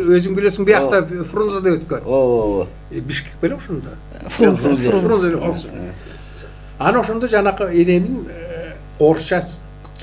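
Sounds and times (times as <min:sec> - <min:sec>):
person talking into microphone: 0:00.0 - 0:06.2.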